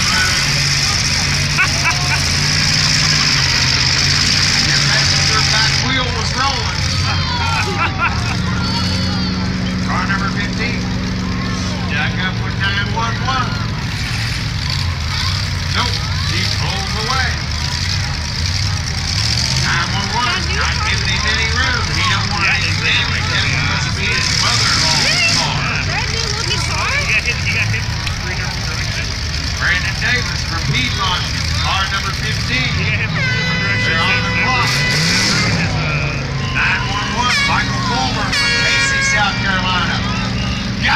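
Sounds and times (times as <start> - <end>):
car engines droning: 0.0 - 40.9
crowd shouting: 0.0 - 40.9
voices: 0.0 - 40.9
horn blasts: 31.6 - 40.9.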